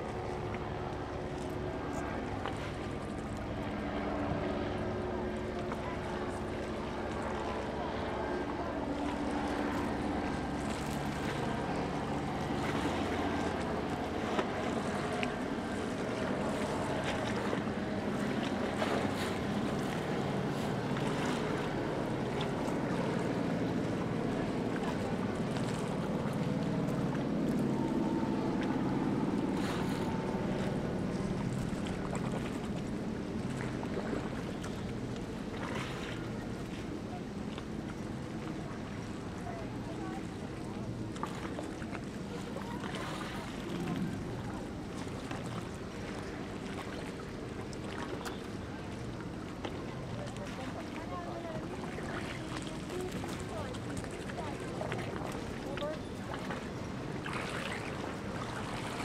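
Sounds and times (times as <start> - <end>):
motorboat engines running: 0.0 - 59.0
waves: 0.0 - 59.0
wind: 0.0 - 59.0.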